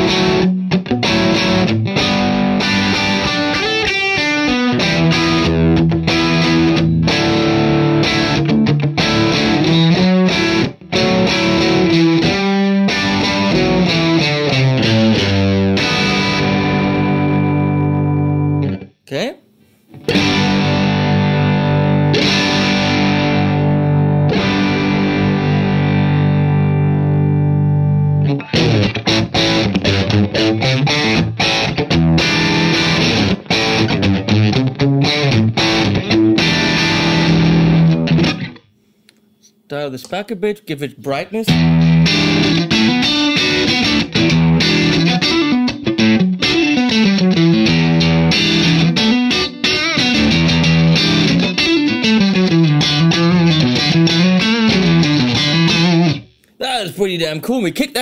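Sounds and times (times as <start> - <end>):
distorted electric guitar: 0.0 - 38.8, 41.4 - 56.7.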